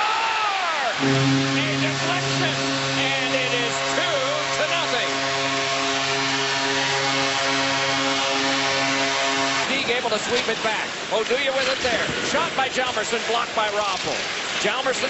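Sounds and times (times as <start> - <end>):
crowd cheering: 0.0 - 5.3
goal horn low tone: 1.0 - 9.8.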